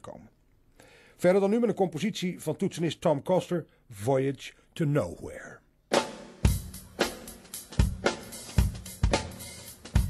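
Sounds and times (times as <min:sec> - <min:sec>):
hi-hat and cymbals: 0:05.9 - 0:10.0.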